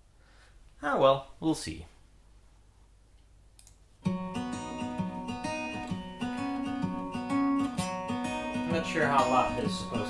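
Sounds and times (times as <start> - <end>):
faint mouse clicks: 3.2 - 3.8.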